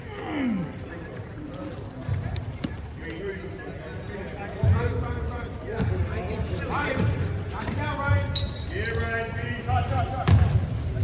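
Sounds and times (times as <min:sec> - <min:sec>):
players' voices: 0:00.0 - 0:11.0
basketball bouncing on court: 0:10.2 - 0:10.7.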